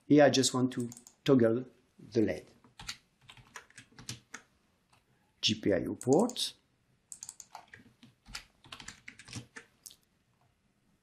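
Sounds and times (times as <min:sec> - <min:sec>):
typing on computer keyboard: 0:00.8 - 0:01.2, 0:02.7 - 0:05.0, 0:06.0 - 0:06.4, 0:07.1 - 0:09.7.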